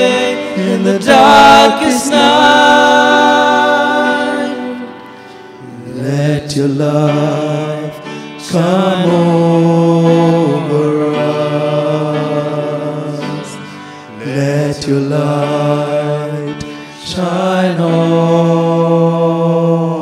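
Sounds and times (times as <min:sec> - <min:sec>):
men singing worship song: 0:00.0 - 0:20.0.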